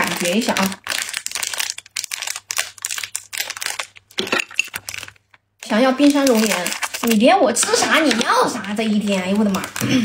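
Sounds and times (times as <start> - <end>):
plastic snack packet crinkling: 0.0 - 10.0.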